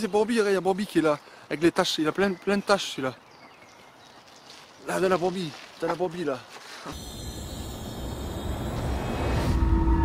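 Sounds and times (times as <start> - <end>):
low rumble: 7.7 - 10.0.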